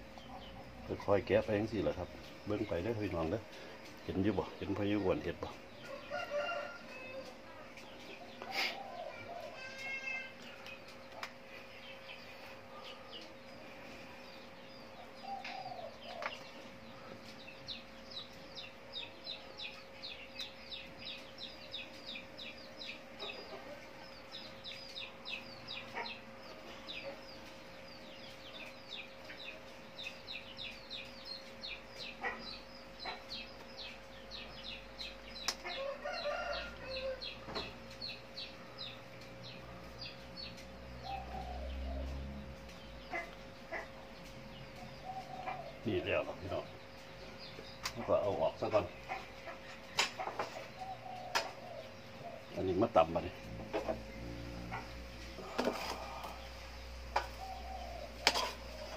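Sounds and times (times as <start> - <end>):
birds chirping: 0.0 - 58.9
chickens clucking: 0.0 - 58.9
faint steady hum: 0.0 - 58.9.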